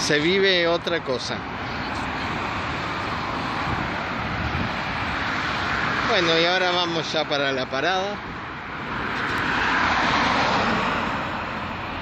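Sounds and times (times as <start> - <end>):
motor vehicle passing by: 8.5 - 12.0.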